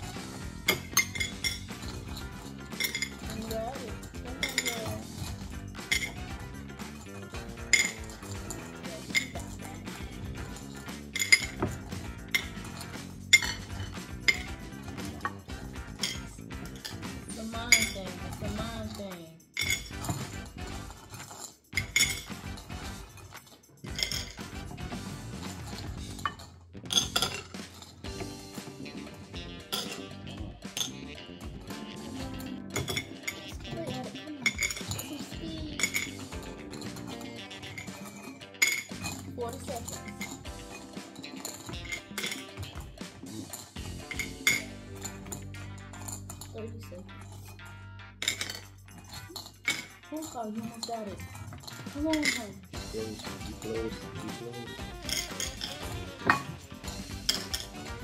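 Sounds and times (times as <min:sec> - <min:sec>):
glass bowl clinking: 0:00.7 - 0:07.1, 0:07.7 - 0:15.4, 0:16.0 - 0:17.0, 0:17.6 - 0:24.4, 0:25.7 - 0:28.3, 0:29.7 - 0:30.0, 0:32.8 - 0:35.2, 0:35.8 - 0:42.8, 0:43.4 - 0:46.5, 0:47.2 - 0:54.3, 0:55.0 - 0:56.6, 0:57.3 - 0:57.8.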